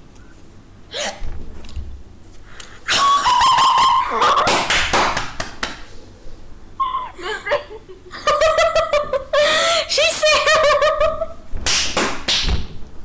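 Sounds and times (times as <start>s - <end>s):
high-pitched squeal: 6.8s - 7.2s
women laughing and giggling: 6.8s - 11.4s.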